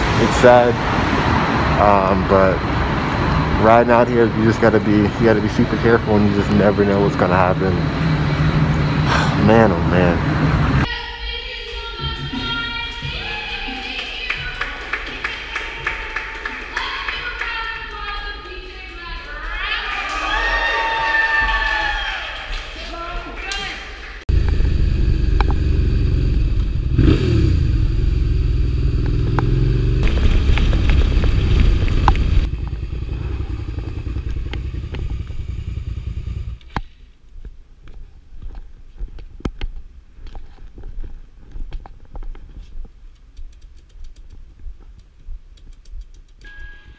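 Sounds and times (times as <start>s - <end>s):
motorcycle engine running: 24.3s - 36.7s.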